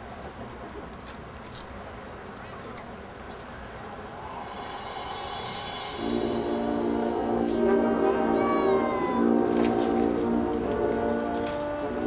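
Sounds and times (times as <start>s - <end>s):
marching band holding chords: 4.1s - 12.0s.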